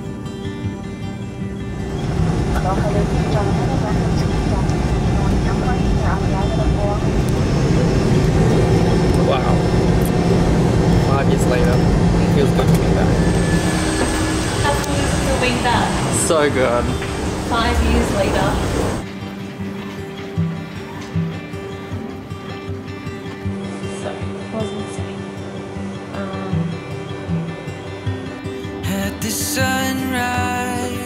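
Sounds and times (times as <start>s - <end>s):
background music: 0.0s - 31.0s
engine hum: 1.6s - 19.0s
indistinct voices: 1.7s - 19.1s, 23.4s - 28.0s.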